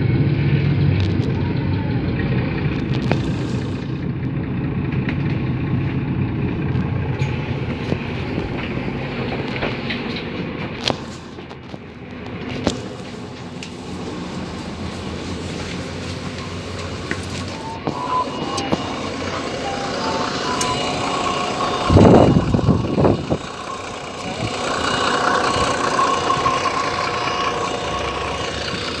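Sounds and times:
bus engine running: 0.0 - 29.0
short beeps: 16.2 - 28.6
loud burst of noise: 16.3 - 29.0.

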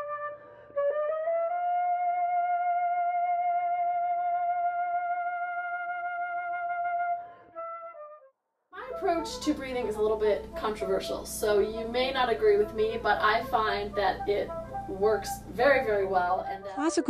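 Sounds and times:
solo flute playing long tones: 0.0 - 8.2.

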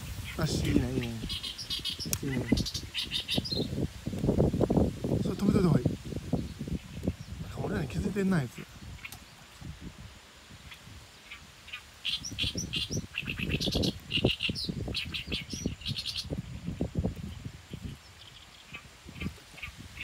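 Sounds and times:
small bird chirping: 0.0 - 4.4, 8.4 - 9.5, 10.6 - 20.0.

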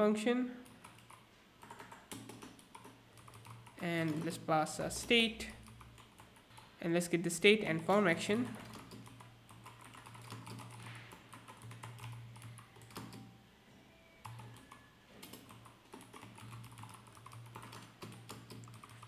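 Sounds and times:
keyboard typing: 0.6 - 6.7, 8.4 - 13.4, 14.2 - 19.0.

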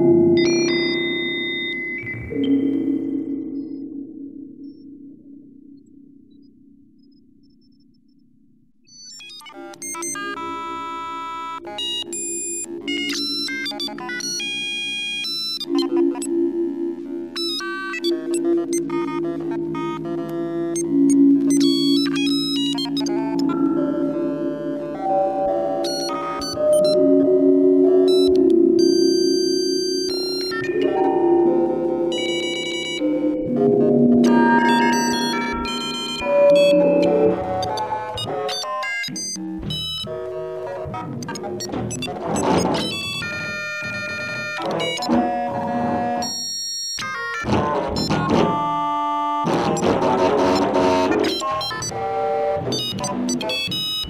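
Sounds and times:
synth chords with spring reverb: 0.0 - 8.8, 15.6 - 46.0
high electronic beeping tones: 15.2 - 39.4.

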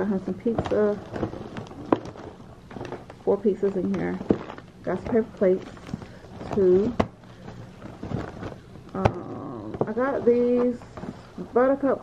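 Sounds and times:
hand rubbing plastic wrapping: 0.0 - 12.0.

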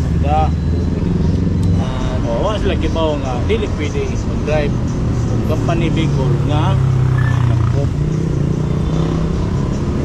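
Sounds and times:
street traffic: 0.0 - 10.0
vehicle engine humming: 0.0 - 10.0.

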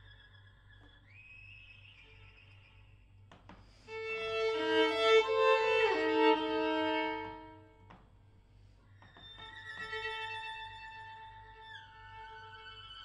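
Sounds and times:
solo violin: 3.9 - 8.0, 9.0 - 13.0.

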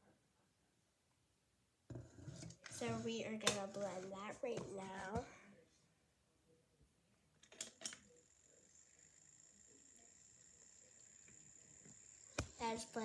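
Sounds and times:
toy blender motor whine: 8.2 - 13.0.

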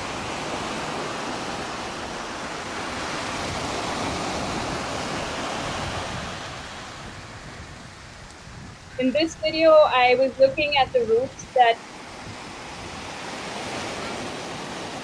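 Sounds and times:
waves washing onto a beach: 0.0 - 15.0.

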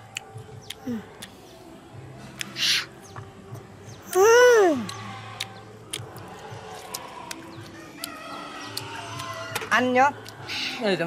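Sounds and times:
chewing clicks: 0.0 - 1.4, 2.4 - 3.3, 4.8 - 9.4, 10.2 - 10.5
rooster crowing: 7.8 - 9.8.

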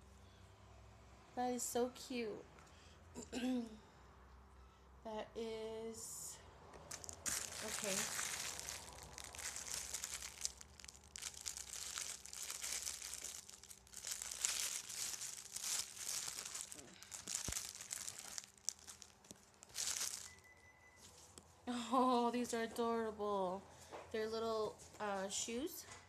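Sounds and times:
plastic bag crinkling: 6.8 - 20.5.

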